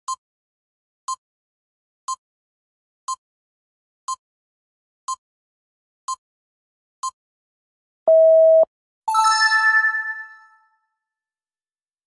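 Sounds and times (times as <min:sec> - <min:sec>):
rising three-note chime: 0:09.1 - 0:10.6.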